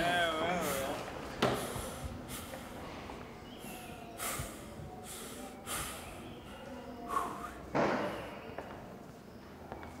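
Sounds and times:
man breathing heavily: 0:00.5 - 0:02.8, 0:03.6 - 0:07.7.

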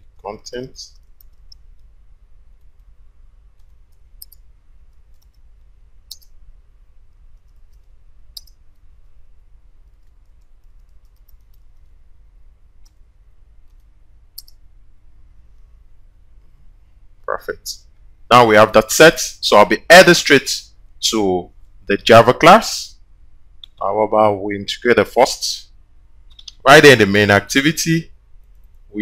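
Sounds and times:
steady low hum: 0:00.0 - 0:29.0
mouse clicks: 0:00.9 - 0:01.9, 0:03.6 - 0:05.4, 0:06.1 - 0:06.4, 0:07.3 - 0:08.8, 0:09.9 - 0:11.9, 0:13.7 - 0:14.6, 0:23.6 - 0:23.8, 0:26.3 - 0:26.6.

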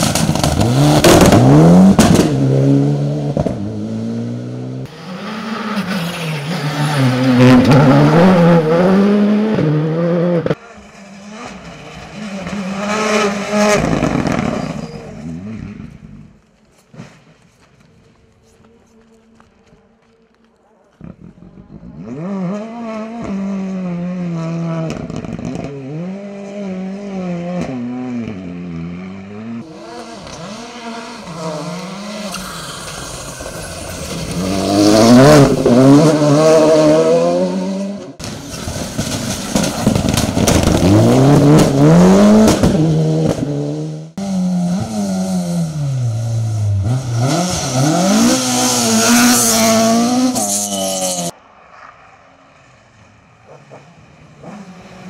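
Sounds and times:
rally car engines revving: 0:00.0 - 0:16.4, 0:21.0 - 0:55.0.

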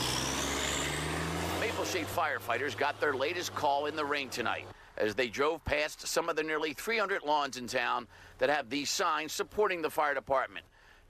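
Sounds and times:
fire engine pulling away: 0:00.0 - 0:04.8.

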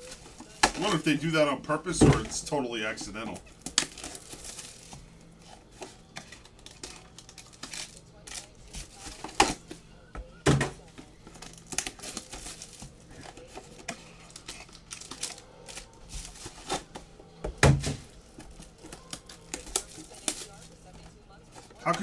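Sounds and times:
foil packs rustling and crinkling: 0:00.0 - 0:09.7, 0:10.8 - 0:17.0, 0:17.7 - 0:22.0.

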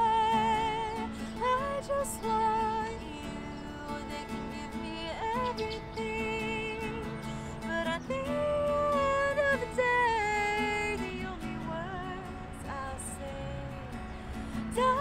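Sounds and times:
strummed acoustic guitar: 0:00.0 - 0:15.0
woman singing: 0:00.0 - 0:15.0.

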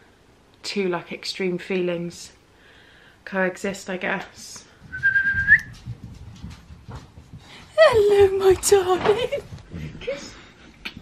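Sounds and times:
soft low bumps: 0:04.8 - 0:11.0
high rising whistle note: 0:04.9 - 0:05.7.

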